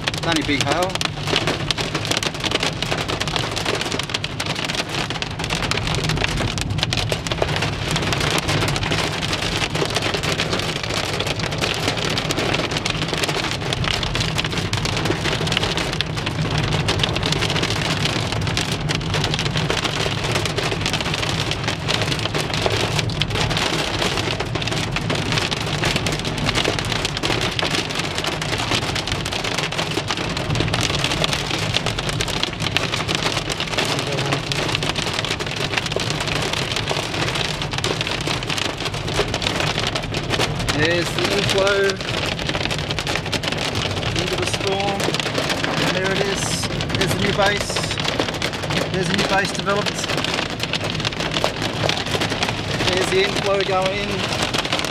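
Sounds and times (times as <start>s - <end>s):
heavy rain on car roof: 0.0s - 54.9s
road and engine rumble: 0.0s - 54.9s.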